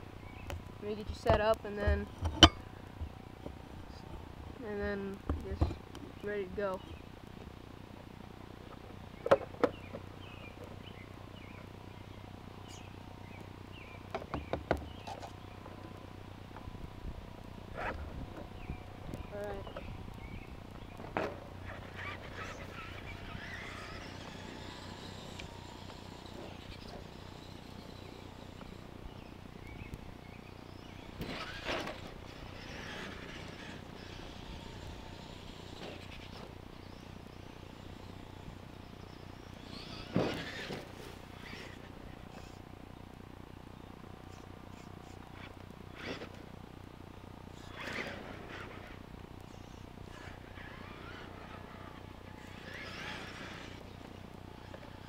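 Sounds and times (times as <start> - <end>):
toy truck motor and tyres: 17.7 - 42.7, 44.3 - 46.6, 47.5 - 55.0.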